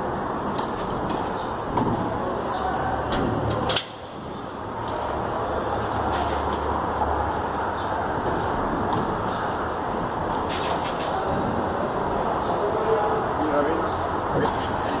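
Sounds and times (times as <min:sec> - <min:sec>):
outdoor city background hiss: 0:00.0 - 0:15.0.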